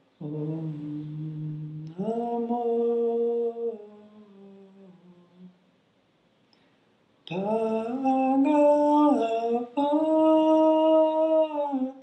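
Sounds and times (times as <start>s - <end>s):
low hummed chant: 0.0s - 5.6s, 7.3s - 12.0s.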